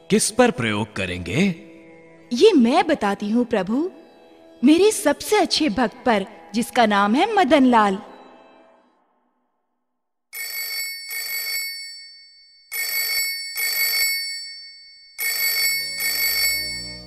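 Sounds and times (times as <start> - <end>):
telephone double ring: 10.4 - 12.0, 12.7 - 14.5, 15.2 - 17.0.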